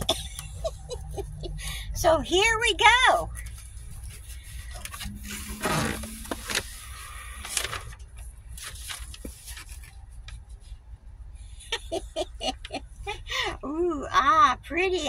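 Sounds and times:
paper and cardboard rustling: 3.3 - 10.8.

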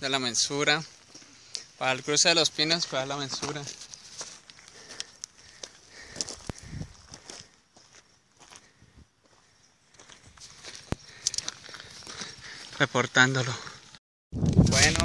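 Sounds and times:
footsteps on dirt trail: 0.1 - 15.0.

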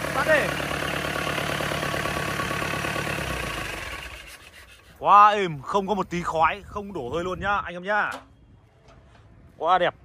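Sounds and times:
diesel engine idling: 0.0 - 7.4.

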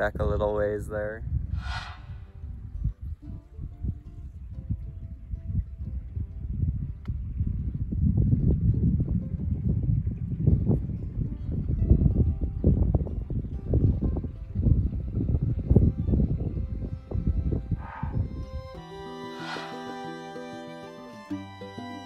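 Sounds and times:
wind buffeting microphone: 0.0 - 20.5
soft background music: 2.5 - 7.2, 8.8 - 22.0.

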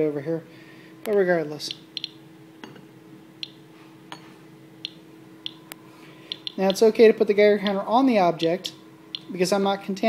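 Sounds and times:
geiger counter clicking: 1.7 - 2.2, 6.3 - 6.8.

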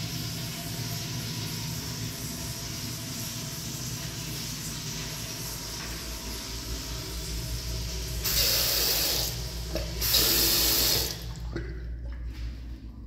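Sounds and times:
water running from faucet: 0.0 - 11.5.

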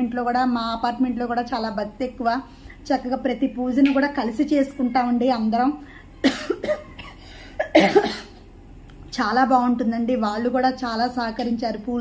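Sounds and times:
woman coughing: 6.2 - 8.4, 11.3 - 11.8.

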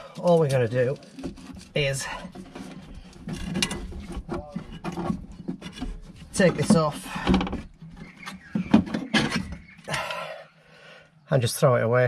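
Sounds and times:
metallic clicks and scraping: 0.0 - 9.7.

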